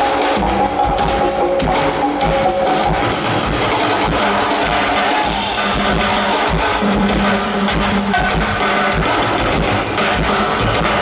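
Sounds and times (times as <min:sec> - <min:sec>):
sustained pitched notes: 0:00.0 - 0:08.0
steady drum beat: 0:00.0 - 0:11.0.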